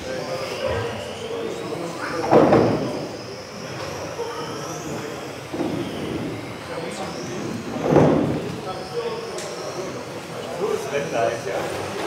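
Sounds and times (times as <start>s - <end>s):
rc car motors whining: 0.0s - 12.0s
voices in echoing hall: 0.0s - 12.0s.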